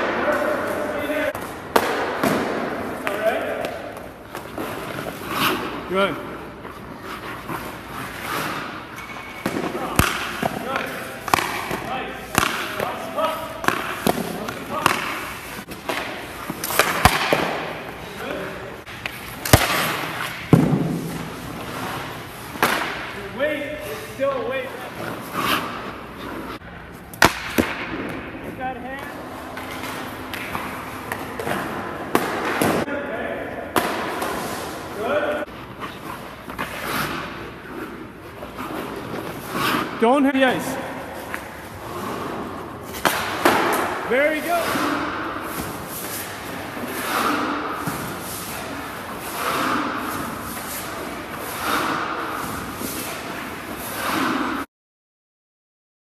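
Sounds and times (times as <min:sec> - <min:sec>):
skate blades scraping ice: 0:03.0 - 0:26.6, 0:34.2 - 0:54.7.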